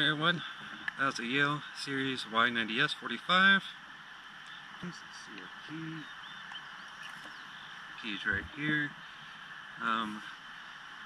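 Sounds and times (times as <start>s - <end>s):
steady outdoor hiss: 0.0s - 11.0s
man murmuring: 4.8s - 6.1s, 8.0s - 8.9s.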